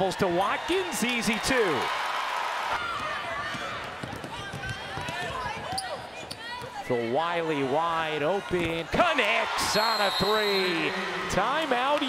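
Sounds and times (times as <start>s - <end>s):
arena crowd noise: 0.0s - 12.0s
basketball bouncing on hardwood: 3.4s - 5.8s.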